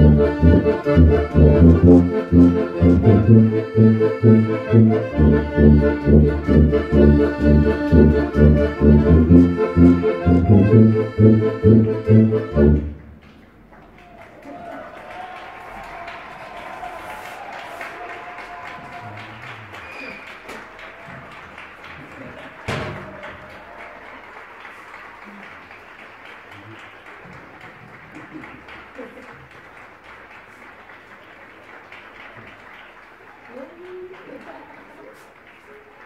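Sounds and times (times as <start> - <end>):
held accordion note: 0.0 - 13.1
faint scattered applause: 12.7 - 36.0.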